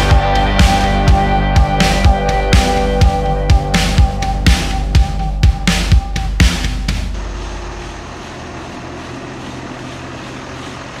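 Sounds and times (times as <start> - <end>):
loud music: 0.0 - 8.2
vehicle engine droning: 0.0 - 11.0.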